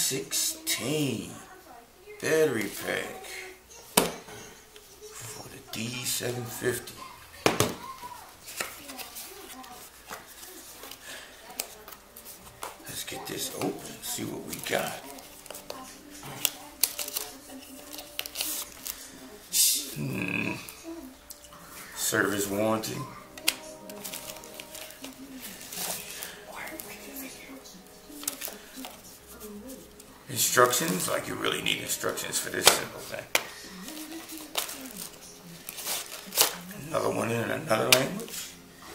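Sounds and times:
quiet background music: 0.0 - 38.9
paper leaflets rustling: 7.8 - 21.1, 21.7 - 38.6
cardboard box handling: 23.9 - 26.9.

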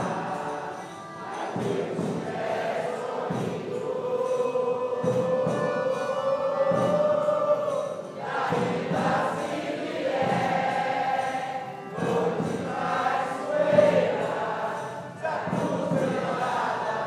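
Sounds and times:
chorus of voices singing: 0.0 - 17.0.

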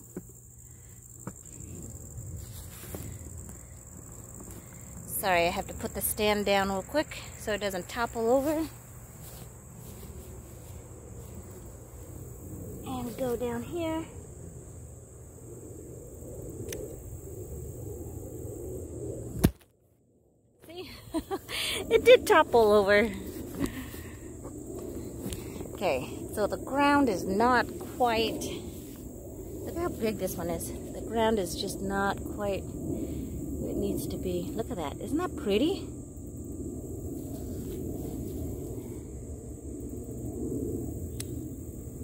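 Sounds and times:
insects chirring: 0.0 - 42.0
rustling and handling noise: 2.4 - 4.9.

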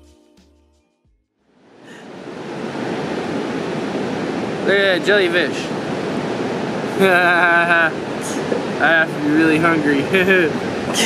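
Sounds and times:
ocean surf on a beach: 1.6 - 11.0.

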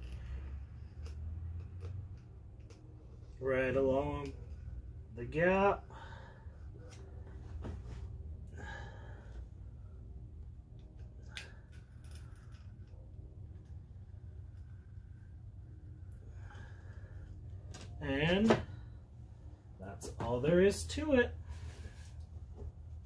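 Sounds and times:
low hum: 0.0 - 23.0
person breathing: 5.8 - 6.8, 8.5 - 10.1, 16.0 - 17.6.

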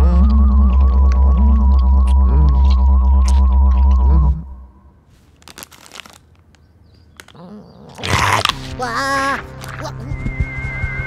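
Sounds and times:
deep electronic drone hum: 0.0 - 5.0
high wavering tone: 0.0 - 5.0
sliding groan-like tones: 0.0 - 5.0.

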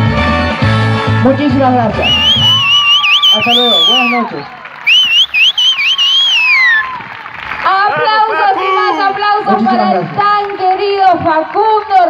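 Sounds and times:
audience whistling: 2.0 - 7.0.

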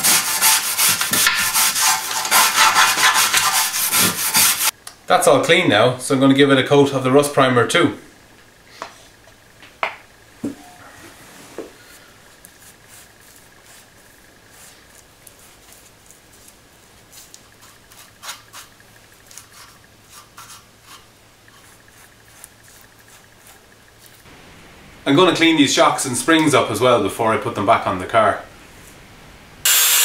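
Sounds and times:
faint steady hum: 0.0 - 29.8
paintbrush brushing and scratching: 10.9 - 24.3.

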